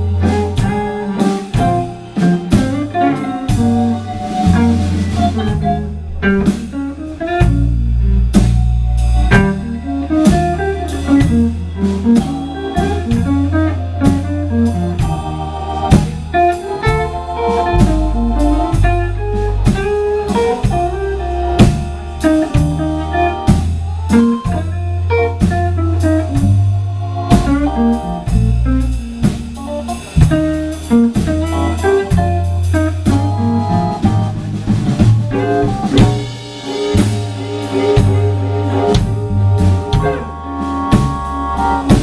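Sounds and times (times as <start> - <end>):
electric guitar solo: 0.0 - 8.3, 9.0 - 15.0, 16.0 - 28.8, 35.2 - 42.0
bass: 0.0 - 42.0
drum kit: 0.0 - 42.0.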